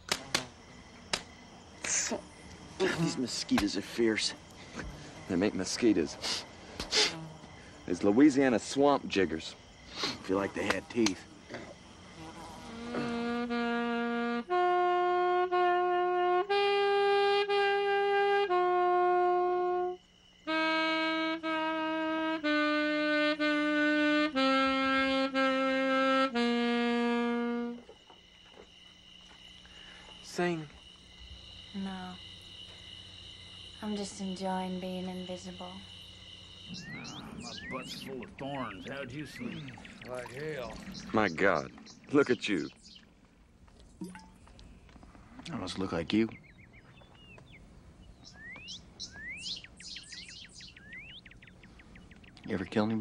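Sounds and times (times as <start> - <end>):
wind instrument slow melody: 12.6 - 28.0.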